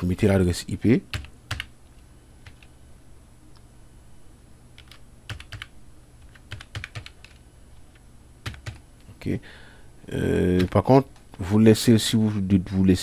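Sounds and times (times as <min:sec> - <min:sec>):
computer keyboard typing: 0:01.1 - 0:01.7, 0:02.4 - 0:02.7, 0:04.8 - 0:07.4, 0:08.4 - 0:08.8.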